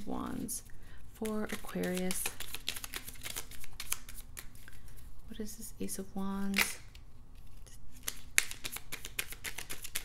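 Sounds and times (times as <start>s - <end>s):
cards being shuffled: 1.2s - 5.0s, 6.5s - 10.0s.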